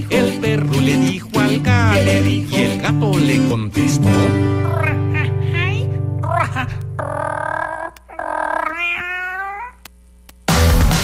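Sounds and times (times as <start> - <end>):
cat meowing: 8.1 - 9.8.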